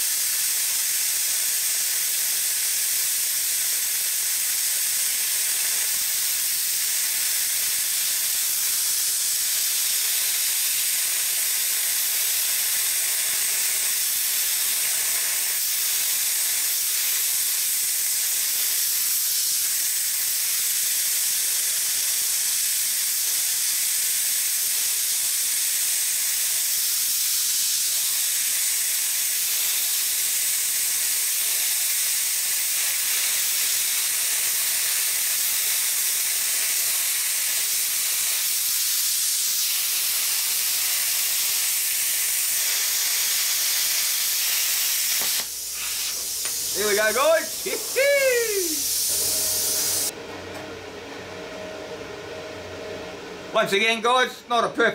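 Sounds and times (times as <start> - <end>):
plasma cutter hissing: 0.0 - 50.1.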